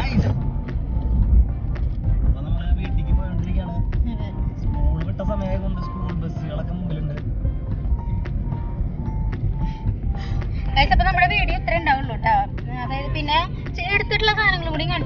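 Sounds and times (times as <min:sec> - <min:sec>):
car cabin rumble: 0:00.0 - 0:15.0
music: 0:00.0 - 0:15.0
people talking: 0:10.7 - 0:15.0.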